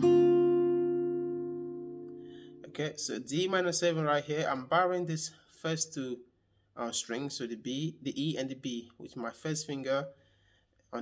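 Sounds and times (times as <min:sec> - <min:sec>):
acoustic guitar chord picked: 0:00.0 - 0:02.8.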